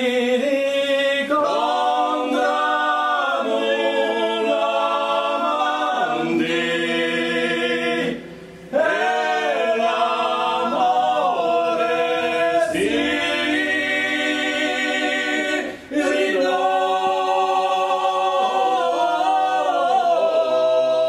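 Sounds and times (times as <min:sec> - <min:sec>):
men singing polyphony a cappella: 0:00.0 - 0:21.0.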